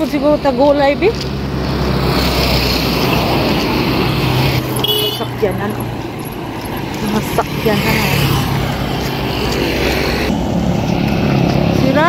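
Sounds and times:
vehicle passing by: 0.0s - 12.0s.

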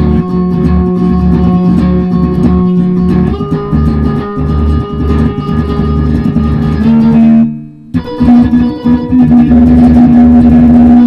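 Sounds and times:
electric guitar low note picked rapidly: 0.0s - 11.0s.

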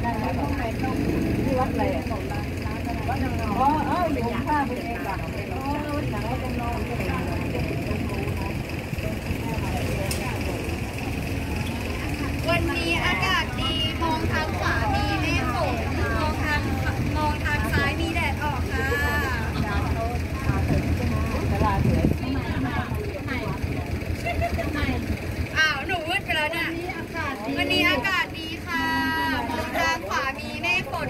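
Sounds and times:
boat engine droning: 0.0s - 31.0s
people talking: 0.0s - 31.0s.

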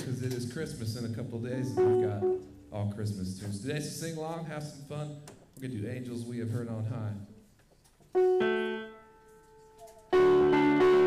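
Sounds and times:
piano chord: 1.7s - 2.6s, 8.2s - 11.0s.

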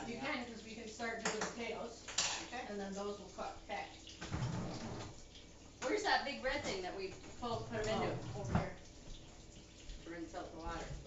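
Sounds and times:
dishwasher rack rumbling: 4.3s - 5.2s.

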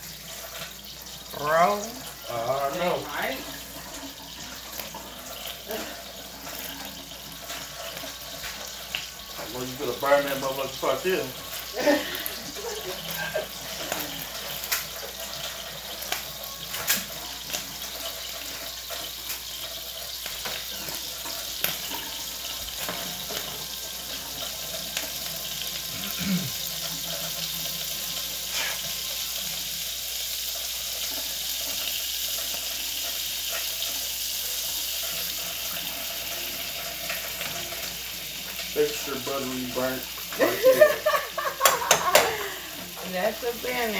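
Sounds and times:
tortilla sizzling in oil: 0.0s - 43.9s
kitchen items clicking and knocking: 40.2s - 43.1s.

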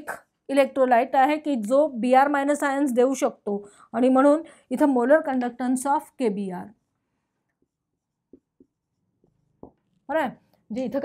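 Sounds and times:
marker pen strokes on whiteboard: 4.8s - 10.7s.

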